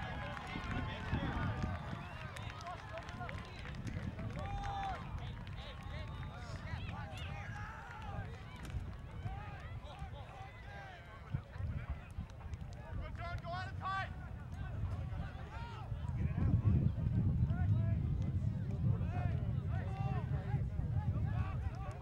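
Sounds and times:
wind rumble on microphone: 0:00.0 - 0:22.0.

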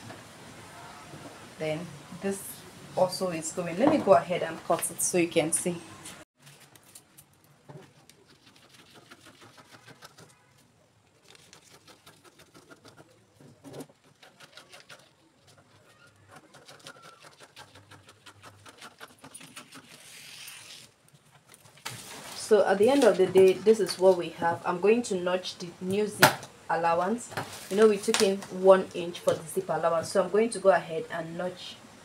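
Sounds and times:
paper rustling: 0:06.4 - 0:23.6
scissors snipping paper: 0:11.2 - 0:13.1, 0:13.8 - 0:21.8.

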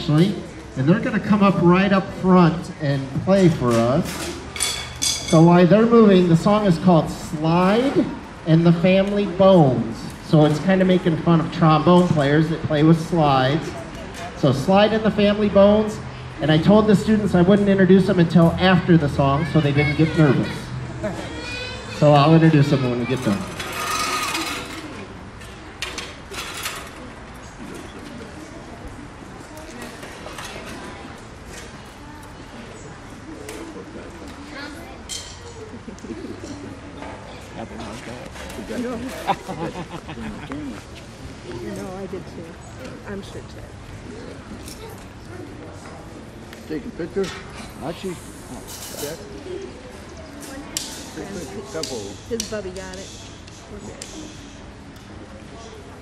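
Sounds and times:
murmur of voices: 0:00.0 - 0:56.0.

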